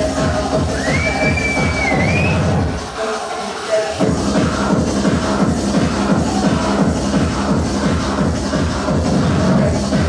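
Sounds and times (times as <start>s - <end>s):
kick drum and bass: 0.0s - 2.8s, 4.0s - 10.0s
loud techno music: 0.0s - 10.0s.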